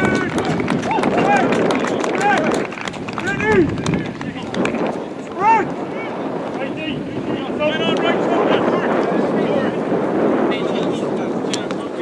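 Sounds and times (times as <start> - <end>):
footballers shouting: 0.0 - 10.1
wind rumbling on microphone: 0.0 - 12.0.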